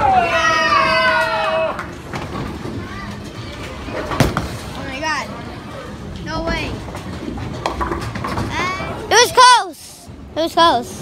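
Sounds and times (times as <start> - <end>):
rumble of rolling bowling balls: 0.0 - 9.4
clatter of bowling pins: 6.4 - 8.8.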